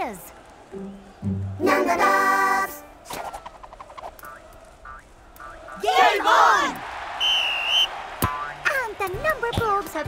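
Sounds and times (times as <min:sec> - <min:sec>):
referee's whistle blast: 0:07.2 - 0:08.0.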